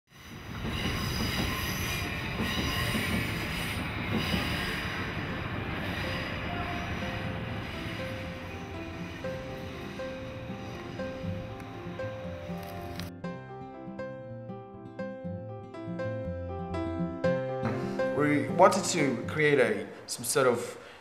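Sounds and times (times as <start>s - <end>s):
train wheels squealing on rails: 0.1s - 12.6s
music with held notes: 6.2s - 19.6s.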